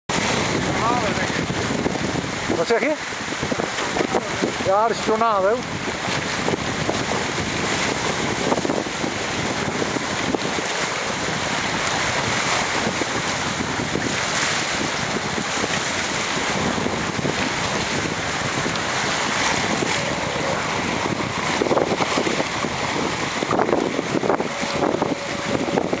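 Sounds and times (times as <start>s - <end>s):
water rushing off a boat hull: 0.1s - 26.0s
wind buffeting microphone: 0.1s - 26.0s.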